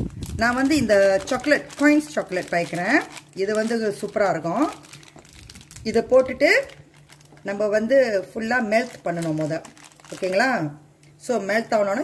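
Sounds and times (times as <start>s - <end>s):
plastic bag crinkling: 0.0s - 10.7s.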